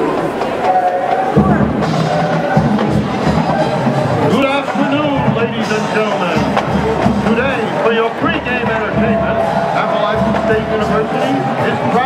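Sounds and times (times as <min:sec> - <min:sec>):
stadium announcer speaking: 0:00.6 - 0:12.0.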